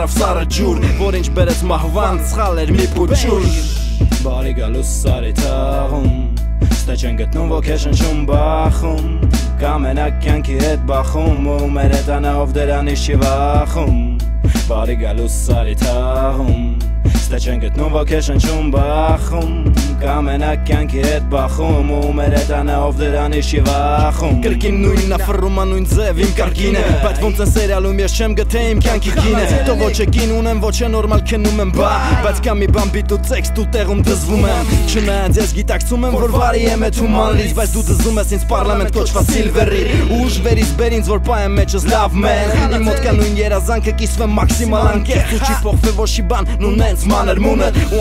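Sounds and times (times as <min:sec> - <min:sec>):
deep bass line: 0:00.0 - 0:48.0
rapping over a beat: 0:00.0 - 0:48.0.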